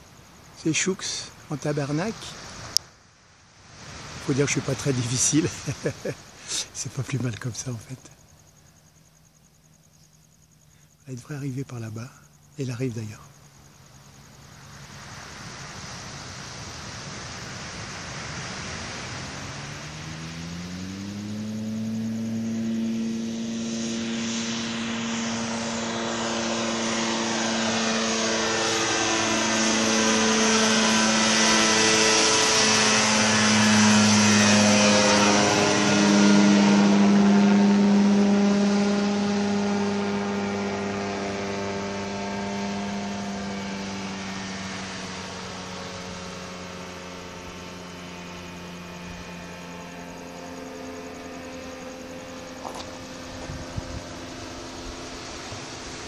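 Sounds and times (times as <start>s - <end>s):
propeller engine flying overhead: 0.0s - 56.0s.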